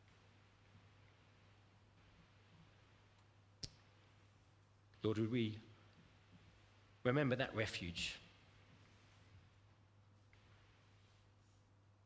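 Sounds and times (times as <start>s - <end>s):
faint low steady hum: 0.0s - 12.0s.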